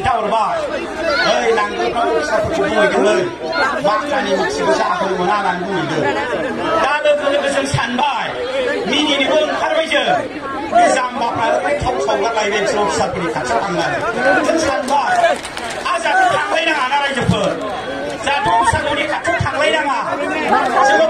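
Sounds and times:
man speaking into a microphone: 0.0 - 21.0.

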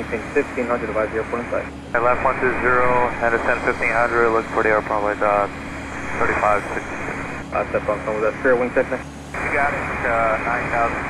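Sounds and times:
tinny radio voice: 0.0 - 5.5, 6.1 - 11.0
radio hiss: 0.1 - 11.0.

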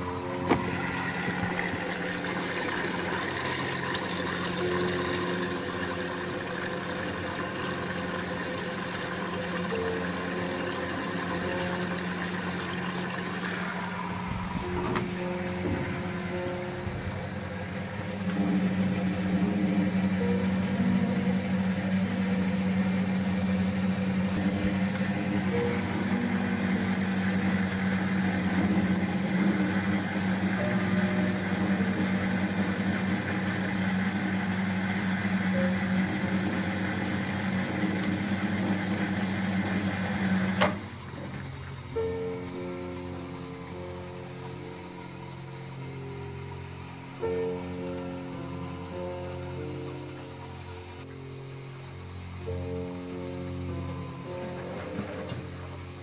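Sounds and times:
washing machine humming: 0.0 - 56.0
water flowing: 0.0 - 56.0
washing machine click: 0.3 - 3.2, 14.2 - 17.2.

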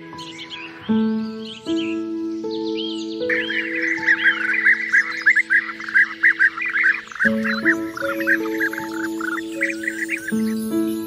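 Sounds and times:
soft background music: 0.0 - 11.0
quick high bird chirps: 3.3 - 10.4.

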